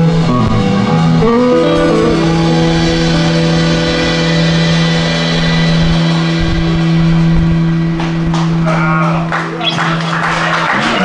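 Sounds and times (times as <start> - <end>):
electric guitar and bass chord ringing: 0.0 - 11.0.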